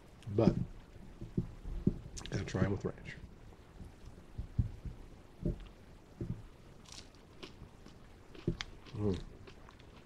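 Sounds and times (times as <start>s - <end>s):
faint crunching of food: 0.2s - 2.8s, 5.4s - 10.0s.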